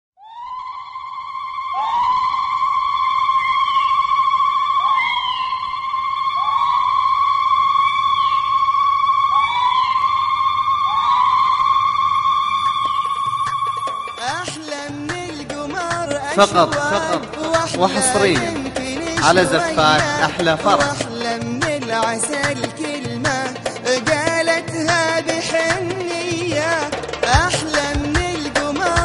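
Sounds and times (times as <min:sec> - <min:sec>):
women ululating: 0:00.2 - 0:14.4.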